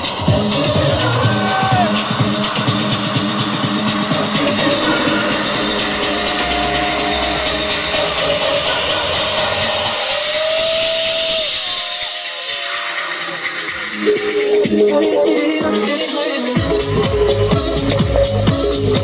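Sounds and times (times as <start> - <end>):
deep bass: 0.0 - 11.5, 16.6 - 19.0
electronic dance music: 0.0 - 19.0
gliding synth line: 2.0 - 15.5.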